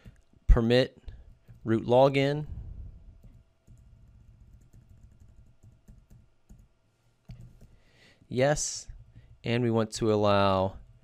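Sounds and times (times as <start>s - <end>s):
computer keyboard clicks: 3.2s - 6.7s.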